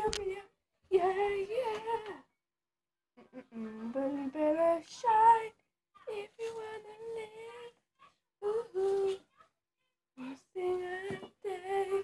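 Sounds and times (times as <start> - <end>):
girl singing without words: 0.0 - 2.3, 3.4 - 7.8, 8.4 - 9.3, 10.2 - 12.0.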